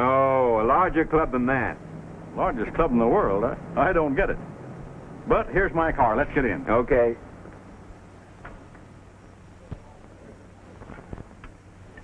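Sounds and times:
film soundtrack hiss and hum: 0.0 - 12.0.

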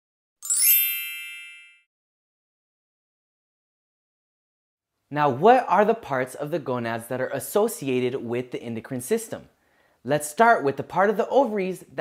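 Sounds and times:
bright shimmering chime: 0.4 - 1.9.

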